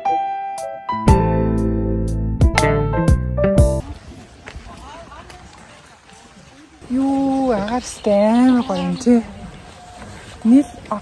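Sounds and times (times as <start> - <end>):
footsteps on pavement: 3.8 - 11.0.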